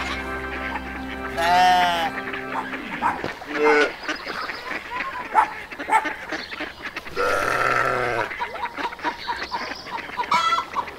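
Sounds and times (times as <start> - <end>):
drawn-out wavering animal call: 0.0 - 4.1.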